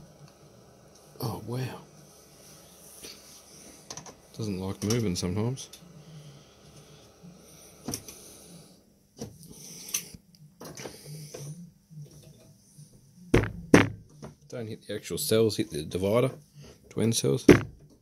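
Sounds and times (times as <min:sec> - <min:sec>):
loud thump: 0:13.4 - 0:14.0, 0:17.5 - 0:17.8.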